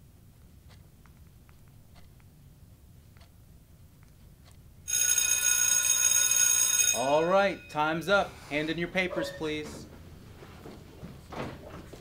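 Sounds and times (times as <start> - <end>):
electric bell ringing: 4.9 - 8.2.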